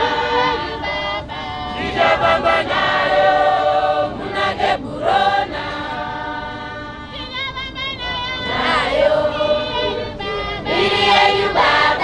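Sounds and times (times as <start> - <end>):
women's choir singing a hymn: 0.0 - 12.0.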